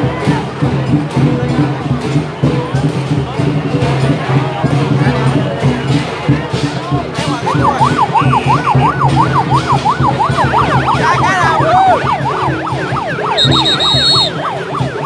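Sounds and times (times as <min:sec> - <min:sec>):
crowd noise: 0:00.0 - 0:15.0
second siren: 0:07.4 - 0:15.0
yelp siren wailing: 0:07.4 - 0:15.0
short high steady tone: 0:13.4 - 0:14.4.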